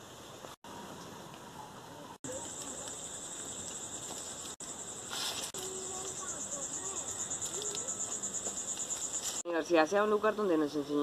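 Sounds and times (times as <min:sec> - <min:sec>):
insects chirring: 0:02.2 - 0:09.5.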